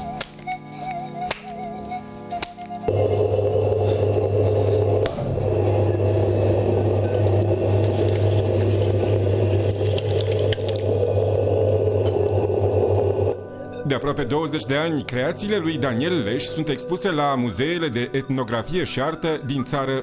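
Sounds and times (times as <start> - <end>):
potter's wheel humming: 2.7 - 13.4.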